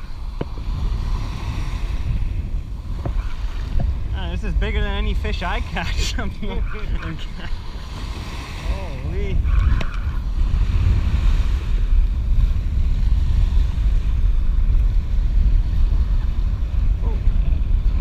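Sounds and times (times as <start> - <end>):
small waves washing onto beach: 0.0 - 18.0
wind buffeting microphone: 0.0 - 18.0.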